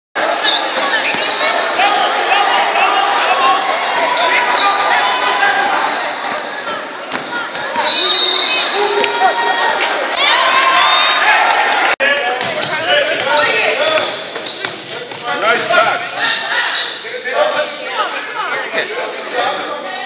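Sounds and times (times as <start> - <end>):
voices in a gym: 0.2 - 20.0
sneakers squeaking on court: 0.4 - 1.8, 3.8 - 9.5, 12.4 - 20.0
whistle: 7.8 - 8.9
basketball bouncing: 12.4 - 15.7.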